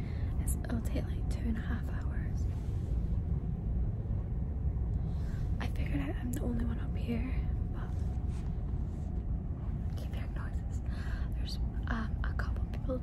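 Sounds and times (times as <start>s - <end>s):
ferry engine rumble: 0.0s - 13.0s
woman whispering: 0.4s - 2.5s, 9.9s - 13.0s.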